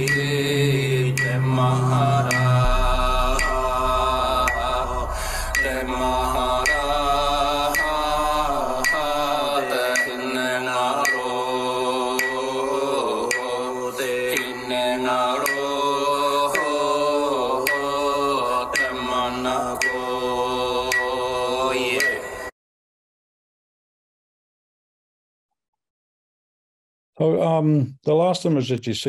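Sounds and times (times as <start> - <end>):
sharp tick: 0.0 - 1.4
low drone: 0.0 - 22.5
person chanting: 0.0 - 22.5.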